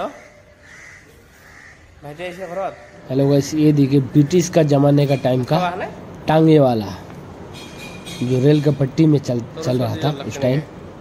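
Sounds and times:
faint bird calls: 0.0s - 4.7s
low background noise: 0.0s - 11.0s.

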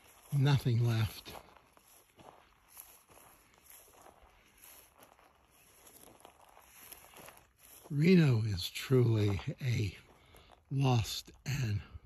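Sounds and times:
soft footsteps through dry grass: 0.0s - 12.0s.

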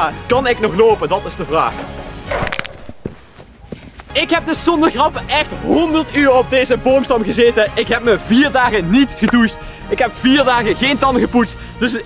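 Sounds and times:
quiet background music: 0.0s - 3.0s, 4.1s - 12.0s
person landing on grass: 2.3s - 4.1s.

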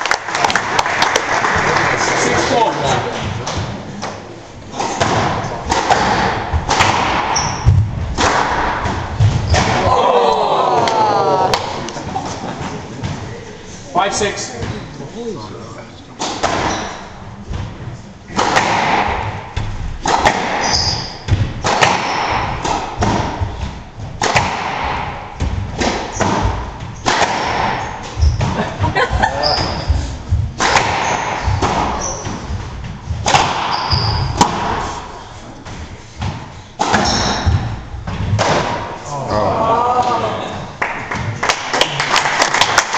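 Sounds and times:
squash ball thuds: 3.2s - 10.0s, 16.2s - 39.0s
short high squeaks: 20.6s - 21.2s.

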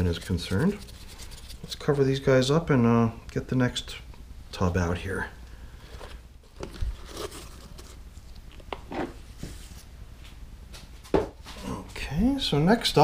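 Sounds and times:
damp paper rustling: 0.0s - 2.0s.

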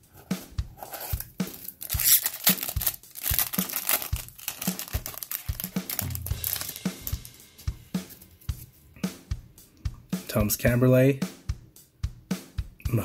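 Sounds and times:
background music with drum beat: 0.0s - 13.0s
foil wrapper tearing and crinkling: 0.9s - 7.3s.

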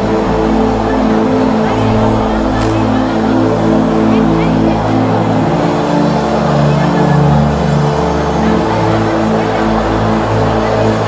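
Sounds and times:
sustained musical chords: 0.0s - 11.0s
voices praying aloud: 0.0s - 11.0s.

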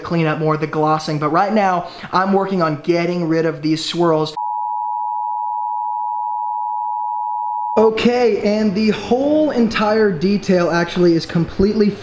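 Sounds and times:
steady electronic beep tone: 4.4s - 7.8s.

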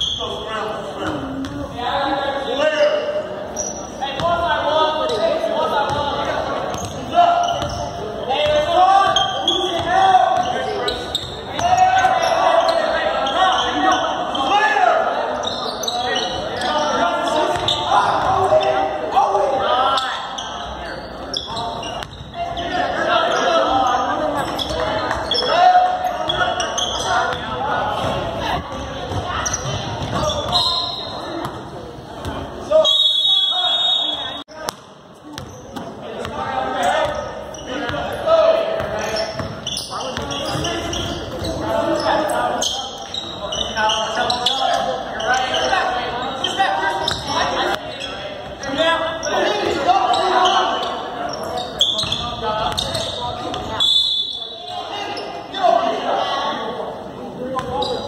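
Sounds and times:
high shoe squeaks: 0.0s - 1.6s, 3.5s - 6.0s, 6.7s - 14.6s, 15.4s - 19.0s, 19.9s - 27.5s, 29.2s - 31.6s, 38.9s - 55.5s, 57.6s - 58.0s
voices echoing in gym: 0.0s - 58.0s.

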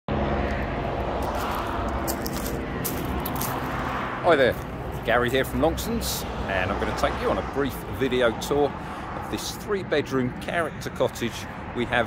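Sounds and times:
road traffic noise: 0.1s - 12.0s
vehicle passing: 0.1s - 12.0s.

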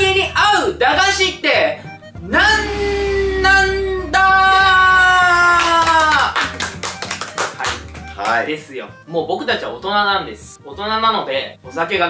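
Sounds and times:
drawn-out shouted vowel: 2.3s - 6.4s
people clapping: 5.3s - 8.5s.

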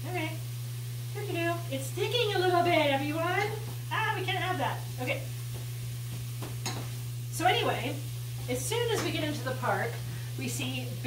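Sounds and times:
food frying in oil: 0.0s - 11.0s
low steady hum: 0.0s - 11.0s.

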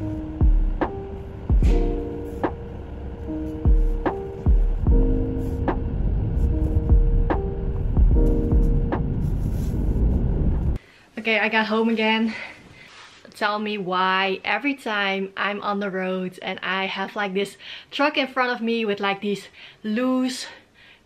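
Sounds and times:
plucked notes over soft low beat: 0.3s - 9.4s.

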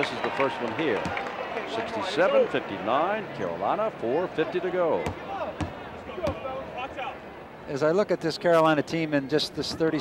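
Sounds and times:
faint crowd and voices: 0.0s - 10.0s.

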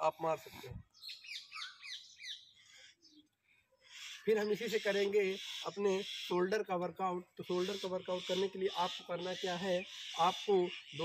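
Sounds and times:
bird chirping: 0.0s - 11.0s.

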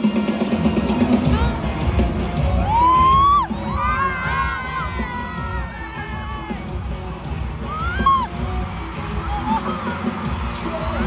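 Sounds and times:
crowd cheering and screaming: 0.5s - 11.0s.

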